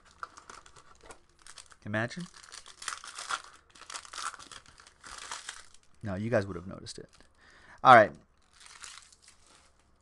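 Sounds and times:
packaging crinkling: 0.0 - 7.4, 8.4 - 9.9.

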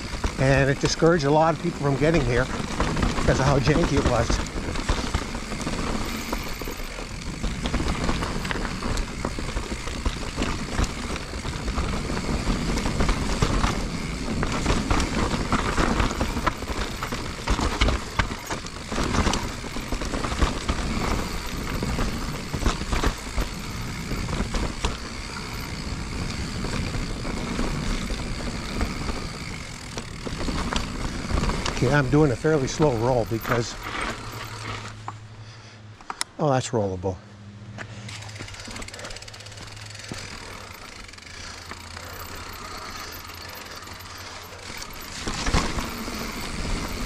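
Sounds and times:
bike knocking and rattling: 0.0 - 35.3, 37.8 - 47.0
bike tyres crunching on dirt: 0.0 - 36.0, 37.7 - 47.0.

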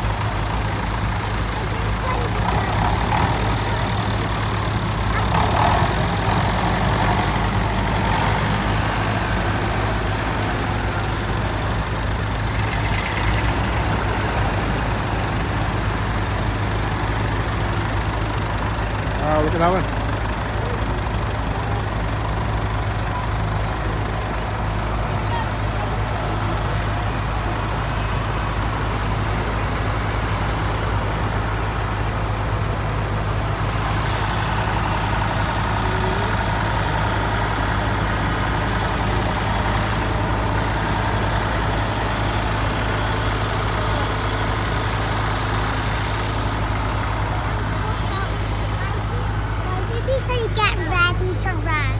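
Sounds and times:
murmur of outdoor crowd: 0.0 - 51.9
tractor engines running: 0.0 - 51.9.

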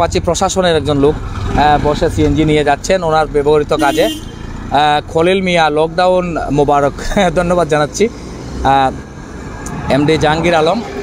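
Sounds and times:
man talking: 0.0 - 9.0, 9.7 - 11.0
street noise with low rumble: 0.0 - 11.0.

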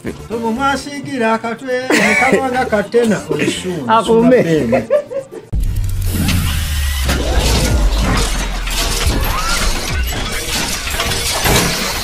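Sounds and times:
deep bass rumble: 5.6 - 10.5.

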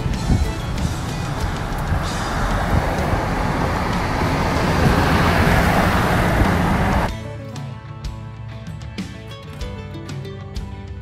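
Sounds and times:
car road and wind noise: 0.0 - 7.1
background music with guitar: 0.0 - 11.0.

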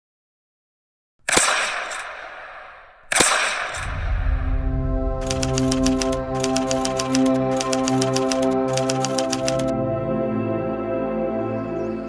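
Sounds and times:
loud reverberating bangs: 1.3 - 7.6
low music: 3.8 - 12.0.

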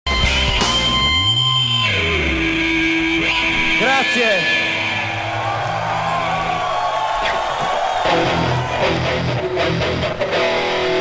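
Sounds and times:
rock band playing live: 0.1 - 6.6, 7.8 - 11.0.

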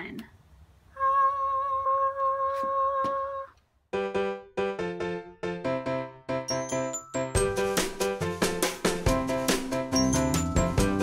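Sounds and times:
person singing high note: 0.9 - 3.6.

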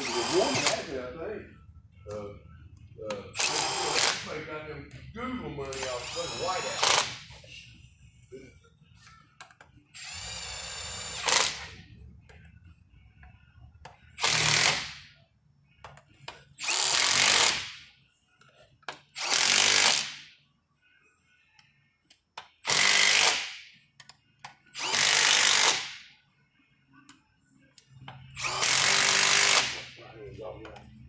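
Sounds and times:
impact driver bursts: 0.0 - 0.9, 3.4 - 4.2, 5.7 - 7.2, 10.0 - 11.7, 14.2 - 15.0, 22.6 - 23.6, 24.8 - 26.0, 28.4 - 29.9.

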